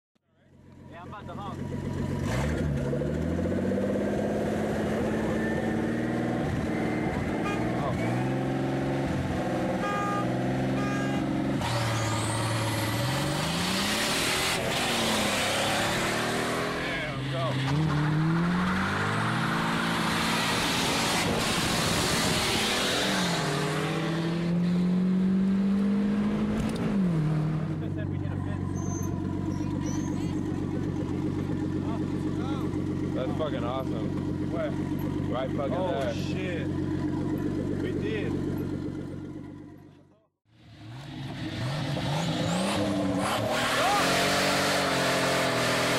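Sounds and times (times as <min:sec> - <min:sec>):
racing car engines at full throttle: 0:00.4 - 0:45.9
cars rushing past: 0:01.8 - 0:39.0, 0:40.6 - 0:45.9.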